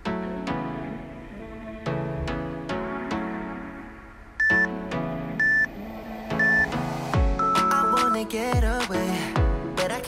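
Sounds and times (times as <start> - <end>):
background music: 0.0 - 10.0
short electronic timer beeps: 4.4 - 4.7.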